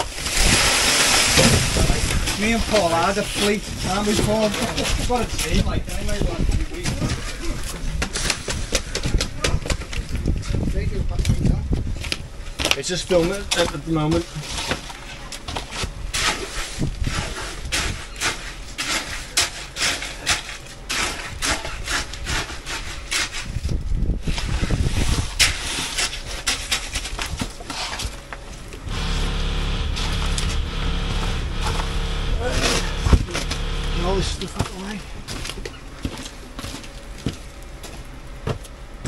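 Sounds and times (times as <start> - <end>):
engine running: 28.5 - 35.1.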